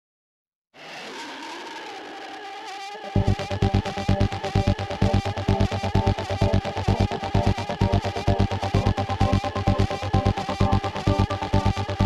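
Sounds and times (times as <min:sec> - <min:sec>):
electronic music with wavering tones: 0:01.4 - 0:12.0.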